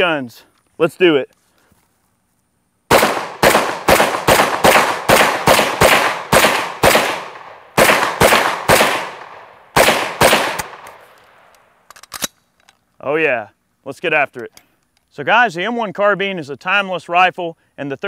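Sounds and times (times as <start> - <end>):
rifle shots with echo: 2.9 - 11.5.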